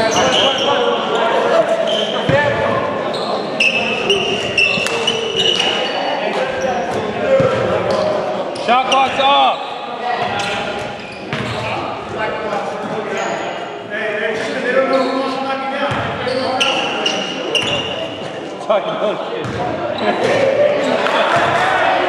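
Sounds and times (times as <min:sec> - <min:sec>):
players talking and calling out: 0:00.0 - 0:22.0.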